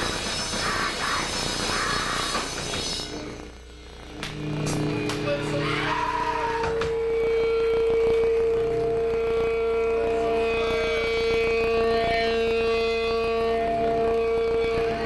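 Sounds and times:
electric guitar feedback tone: 2.0s - 15.0s.

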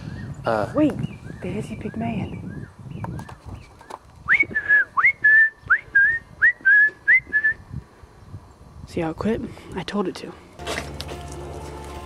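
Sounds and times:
bird whistling: 4.3s - 7.6s.

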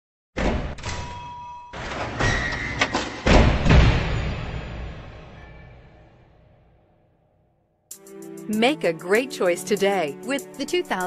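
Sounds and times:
deep heavy hits with ringing tail: 3.3s - 6.6s.

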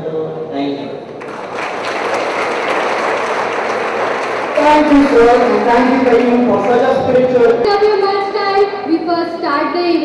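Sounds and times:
audience applauding: 1.2s - 7.5s.

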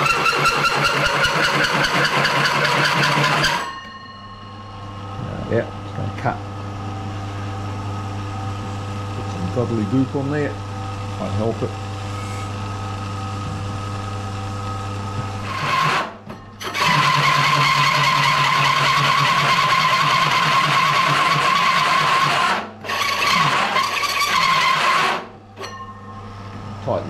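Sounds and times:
hole saw squealing through metal: 0.0s - 4.0s, 15.4s - 25.9s
drill press motor humming: 0.0s - 27.0s.

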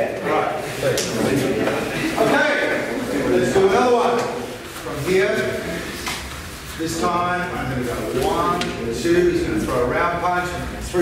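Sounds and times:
men talking indistinctly: 0.0s - 11.0s.

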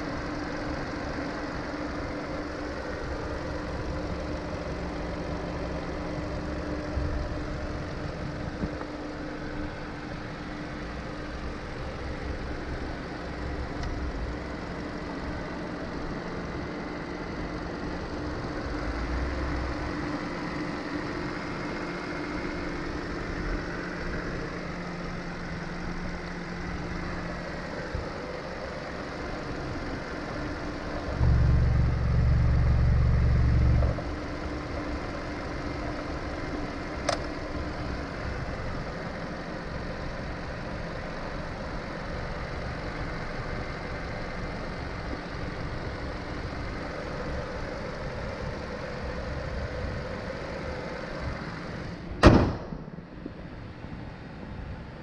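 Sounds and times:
car engine idling: 0.0s - 55.0s
sharp click: 37.0s - 37.3s.

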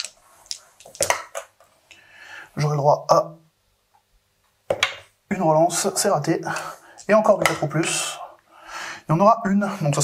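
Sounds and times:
dice clattering on table: 0.0s - 1.5s.

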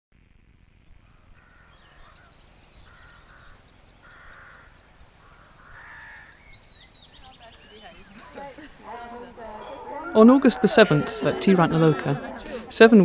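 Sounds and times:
small birds chirping high: 0.8s - 12.9s
low bird call: 0.9s - 12.7s.

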